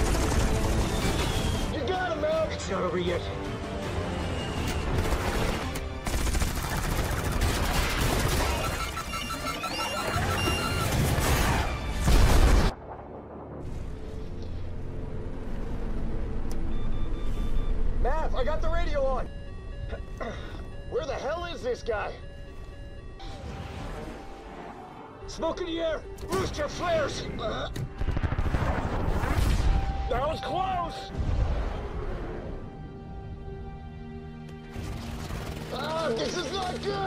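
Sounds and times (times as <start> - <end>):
film score music: 0.0 - 37.0
quick evenly spaced beeps: 8.2 - 11.0, 16.6 - 24.4
cannon fire volleys: 28.0 - 29.8.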